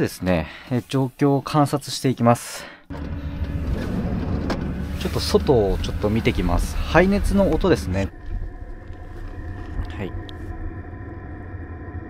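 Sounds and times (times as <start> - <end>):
heater combustion rumble: 2.9 - 12.0
steady hum: 2.9 - 12.0.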